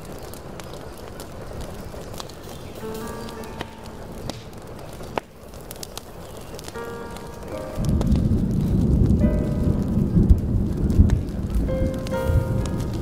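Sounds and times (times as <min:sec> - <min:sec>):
steady rain: 0:00.0 - 0:13.0
wood fire crackle: 0:00.0 - 0:13.0
rolling thunder rumble: 0:01.3 - 0:13.0.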